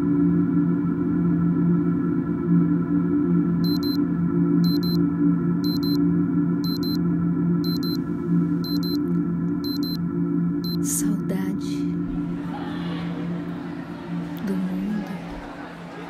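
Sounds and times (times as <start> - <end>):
high electronic double beep: 3.7 - 4.0, 4.7 - 5.0, 5.7 - 6.0, 6.7 - 7.0, 7.7 - 8.0, 8.7 - 9.0, 9.7 - 10.0.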